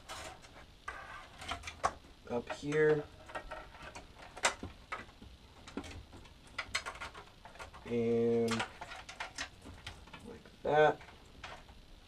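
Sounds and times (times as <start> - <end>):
cables rustling: 0.0 - 12.0.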